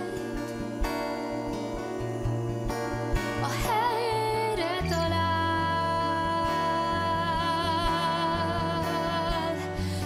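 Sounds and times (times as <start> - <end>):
acoustic guitar plucking: 0.0 - 10.0
woman singing: 0.0 - 10.0.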